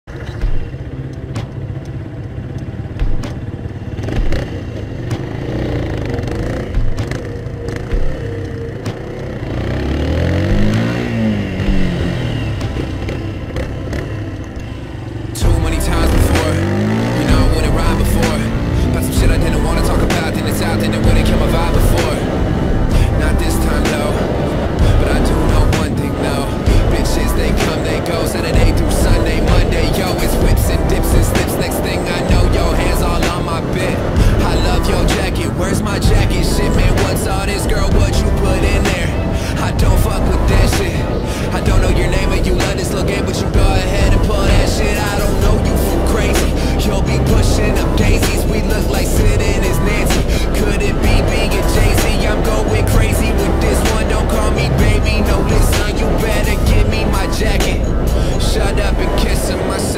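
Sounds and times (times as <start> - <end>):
motorcycle engine revving: 0.0 - 59.9
music with a beat: 0.1 - 59.6.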